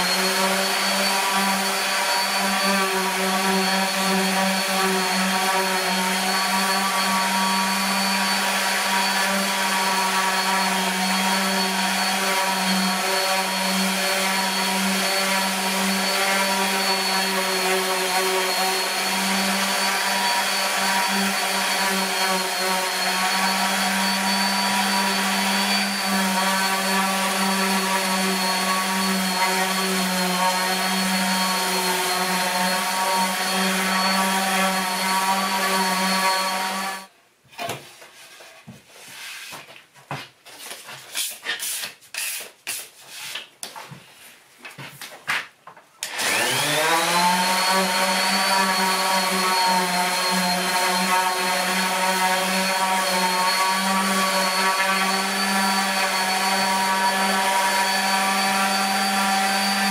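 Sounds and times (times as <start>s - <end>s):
orbital sander sanding wood: 0.0s - 37.1s, 46.0s - 59.9s.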